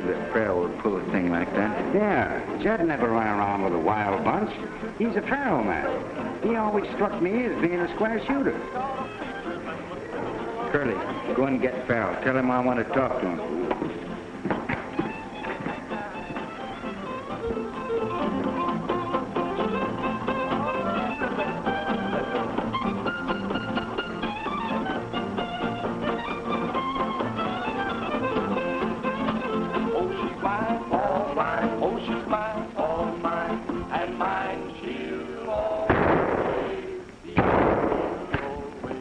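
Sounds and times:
country dance-band music: 0.0s - 39.0s.

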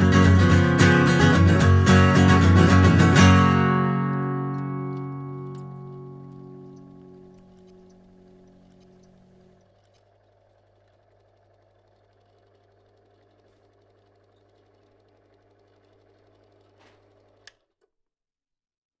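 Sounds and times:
acoustic guitar notes: 0.0s - 9.6s.

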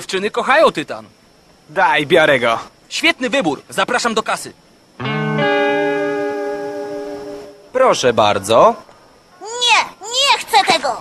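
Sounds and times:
electric guitar chord sting: 5.0s - 7.8s.

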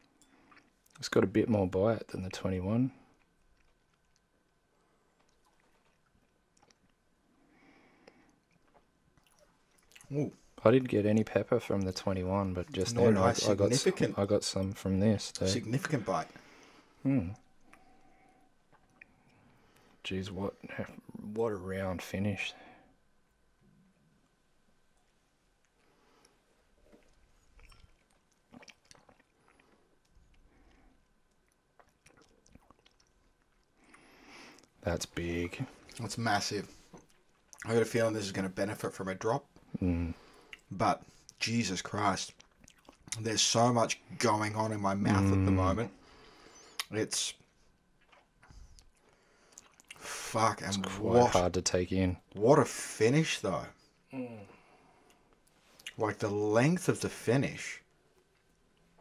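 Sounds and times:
faint mouth sounds: 2.9s - 10.6s, 16.9s - 20.0s, 25.6s - 34.8s, 39.6s - 41.4s, 45.1s - 51.4s.

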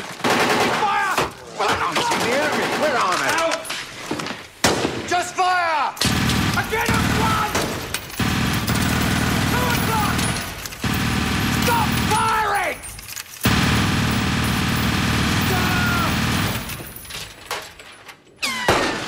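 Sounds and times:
machine gun firing bursts: 0.0s - 0.9s, 2.0s - 3.3s, 6.0s - 17.0s
men shouting: 6.6s - 7.6s, 9.4s - 10.5s, 11.5s - 12.8s, 15.3s - 16.4s.

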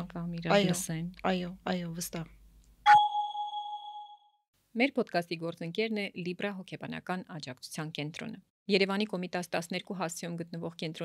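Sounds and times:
woman speaking: 0.0s - 2.4s, 4.8s - 11.0s
chime strike: 2.9s - 4.3s.

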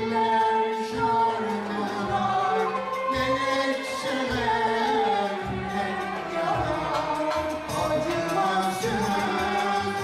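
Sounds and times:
instrumental ensemble playing: 0.0s - 10.0s
man singing: 0.0s - 10.0s.

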